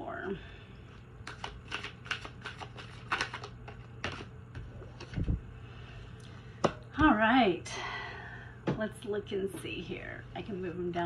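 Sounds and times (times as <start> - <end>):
cards being shuffled: 1.2 - 5.4.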